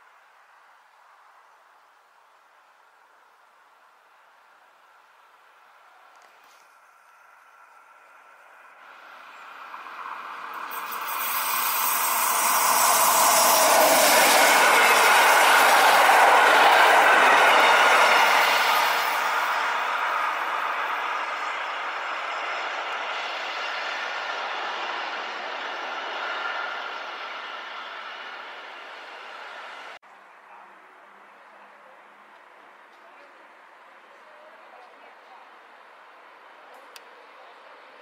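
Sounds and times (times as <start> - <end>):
train wheels on rails: 6.3 - 30.0.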